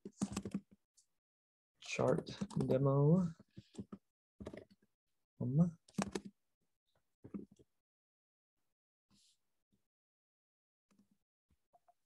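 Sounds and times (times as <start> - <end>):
computer keyboard keystrokes: 0.1 - 0.6, 5.9 - 6.3.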